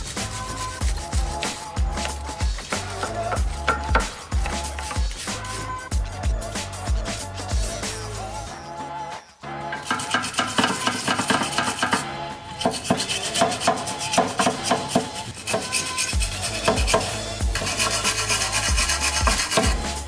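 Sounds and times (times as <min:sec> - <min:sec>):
wire brush scrubbing rusty metal: 0:00.0 - 0:08.4, 0:09.8 - 0:20.0
background music with bass beat: 0:00.0 - 0:20.0.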